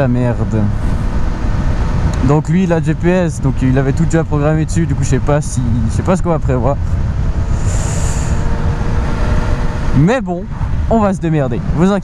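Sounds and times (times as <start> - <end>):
motorcycle engine drone: 0.0 - 12.0
wind rumble on microphone: 0.0 - 12.0.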